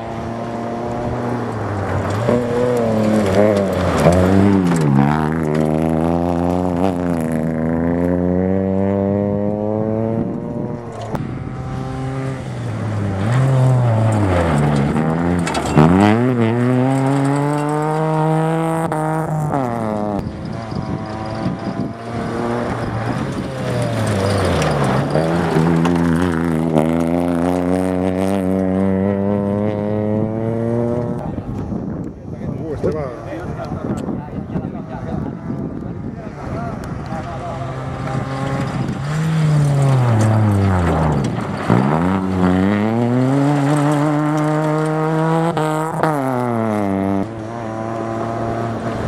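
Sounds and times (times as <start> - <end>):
rally car engine at full throttle: 0.0 - 49.0.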